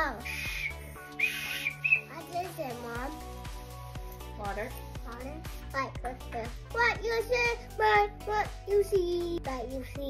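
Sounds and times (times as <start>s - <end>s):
quiet background music: 0.0s - 10.0s
toy whistle toots: 0.2s - 2.1s.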